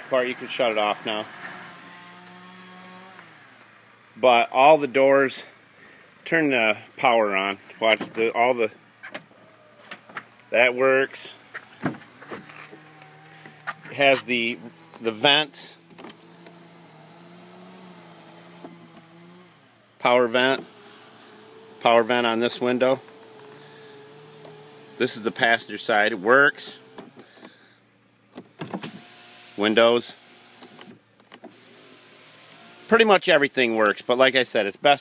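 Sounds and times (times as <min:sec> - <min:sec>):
small electric motor humming: 0:00.0 - 0:03.8, 0:12.1 - 0:13.9, 0:14.5 - 0:15.0, 0:15.9 - 0:19.8, 0:20.5 - 0:25.7, 0:26.7 - 0:27.2, 0:28.8 - 0:32.9.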